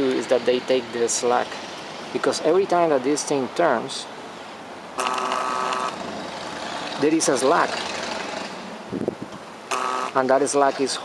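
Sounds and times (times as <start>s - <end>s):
small electric motor whine: 5.0s - 7.0s, 9.7s - 10.2s.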